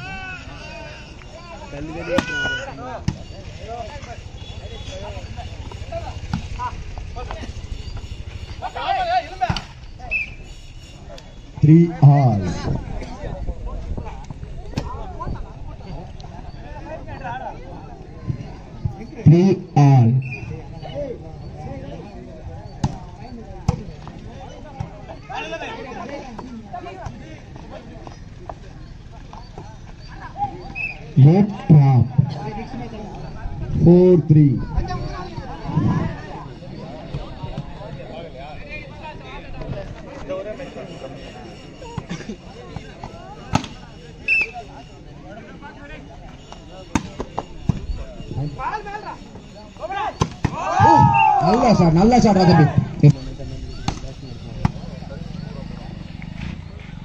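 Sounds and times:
people shouting: 0.0 - 10.2, 46.4 - 53.1
players shouting: 0.0 - 13.1, 29.2 - 56.8
background chatter: 0.0 - 57.0
volleyball being struck: 43.5 - 43.7, 46.9 - 47.8, 50.2 - 51.2, 53.8 - 54.8.

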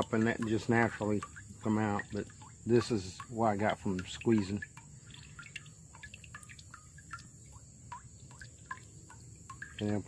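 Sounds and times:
juice dripping into a pot: 0.0 - 10.0.

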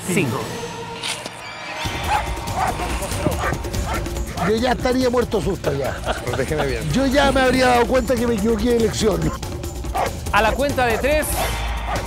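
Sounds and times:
dog barking: 2.1 - 4.6, 8.8 - 12.0.

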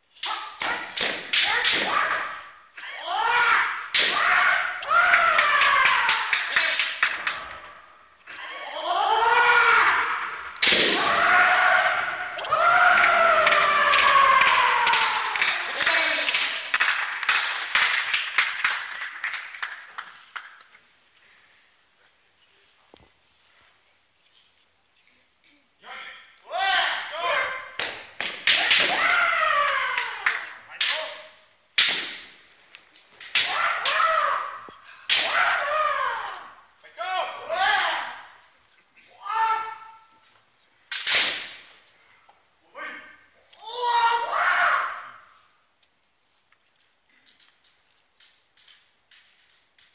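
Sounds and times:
bamboo sword clack: 0.2 - 2.4, 3.9 - 4.4, 27.8 - 32.4, 33.0 - 35.4, 40.9 - 41.7
loud shouted cries echoing: 0.2 - 7.8, 8.6 - 16.9, 26.4 - 27.8, 28.5 - 31.4, 33.4 - 38.4, 39.1 - 40.2, 42.8 - 45.4
hand clapping: 5.1 - 7.6, 12.4 - 20.7, 27.8 - 28.6, 29.6 - 31.0.

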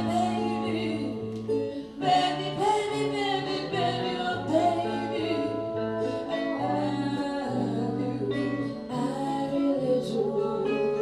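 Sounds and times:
acoustic guitars: 0.0 - 11.0.

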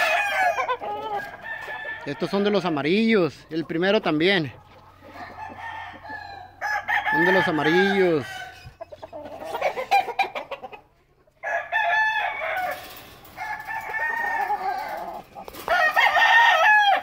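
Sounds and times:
roosters crowing: 0.0 - 3.4, 4.9 - 10.8, 11.4 - 17.0.

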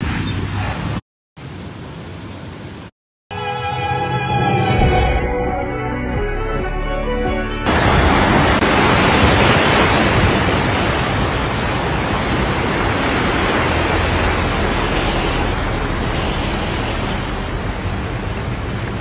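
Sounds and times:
background music: 3.3 - 7.7
heavy rain rushing: 7.7 - 19.0.

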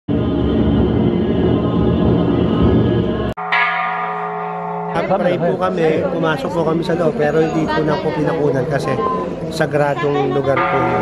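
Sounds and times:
temple bell ringing: 3.4 - 9.6, 10.3 - 11.0.

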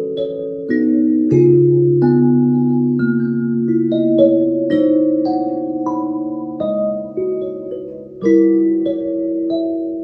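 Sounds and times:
plucked metal tines melody: 0.0 - 10.0.

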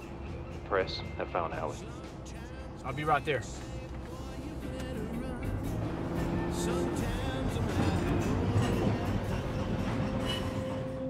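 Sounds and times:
streetcar wheels rumbling on rails: 2.8 - 11.0.

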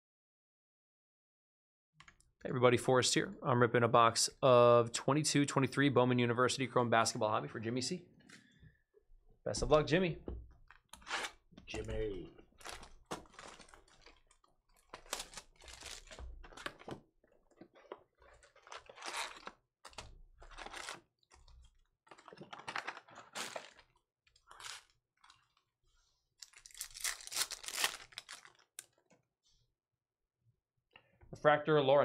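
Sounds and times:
plastic wrap crinkling and tearing: 11.9 - 21.0, 21.6 - 25.6, 26.4 - 28.9.

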